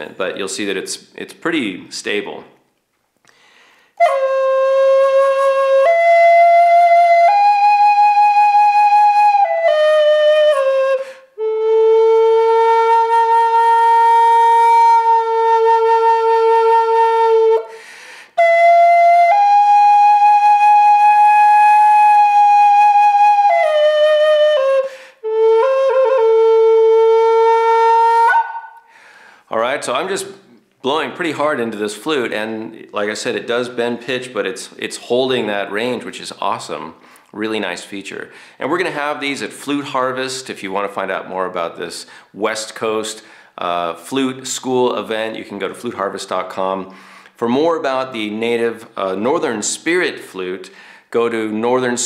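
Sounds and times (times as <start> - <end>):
flute playing long held notes: 4.0 - 17.7, 18.4 - 28.9.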